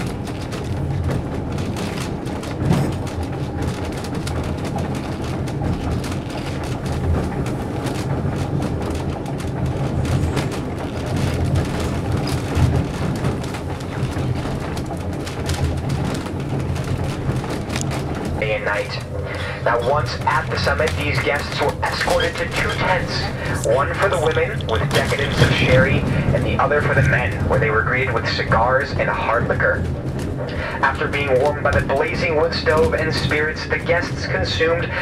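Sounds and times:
small clicks and rattles: 0:00.0 - 0:19.4
train rumbling on rails: 0:00.0 - 0:35.0.

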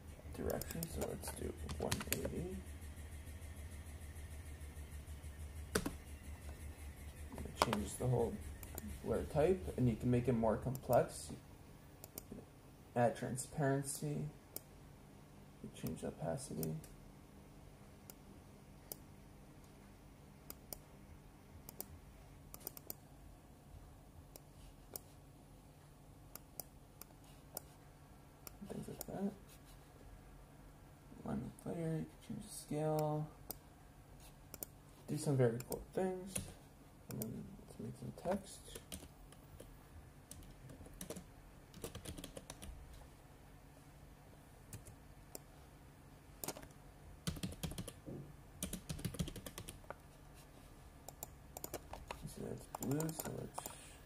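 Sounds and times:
computer keyboard typing: 0:00.4 - 0:09.4, 0:38.8 - 0:39.7, 0:40.3 - 0:42.8, 0:44.7 - 0:45.0, 0:46.4 - 0:48.0, 0:48.6 - 0:50.0, 0:51.1 - 0:53.8
faint mouse clicks: 0:34.5 - 0:34.8, 0:37.1 - 0:37.3, 0:51.1 - 0:53.8.

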